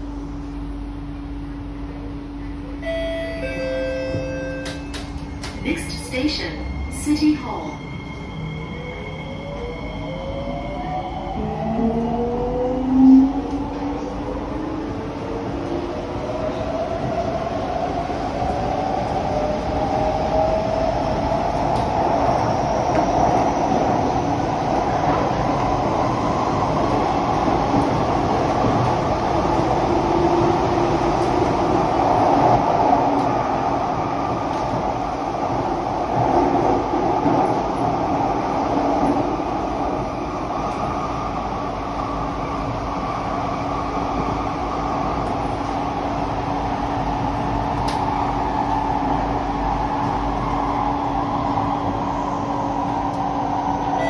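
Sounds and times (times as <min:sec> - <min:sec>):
train wheels on rail: 0:00.0 - 0:07.5, 0:11.6 - 0:54.0.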